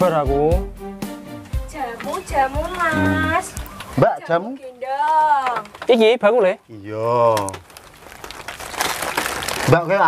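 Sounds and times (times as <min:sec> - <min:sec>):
plastic packets crinkling: 0:07.2 - 0:10.0.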